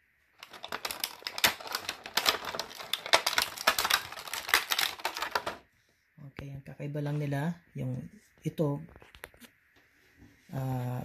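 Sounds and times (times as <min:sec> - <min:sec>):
plastic packaging crackling: 0:00.4 - 0:05.6.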